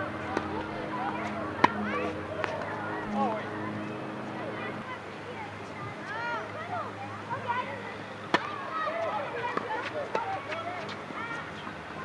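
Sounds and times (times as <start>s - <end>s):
tennis ball bouncing: 0.0s - 2.8s, 8.3s - 11.0s
tennis racket hitting ball: 0.1s - 2.7s, 8.3s - 8.6s.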